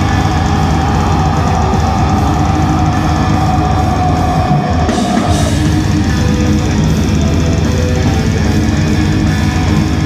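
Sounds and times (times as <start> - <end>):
live band playing loudly: 0.0 - 10.0.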